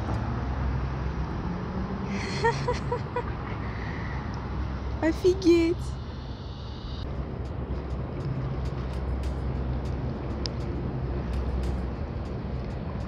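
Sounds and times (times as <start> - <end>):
boat engine humming: 0.0 - 13.0.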